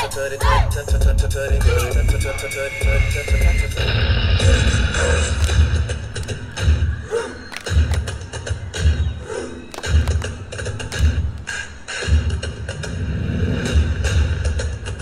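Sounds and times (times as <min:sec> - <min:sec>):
dance music: 0:00.0 - 0:15.0.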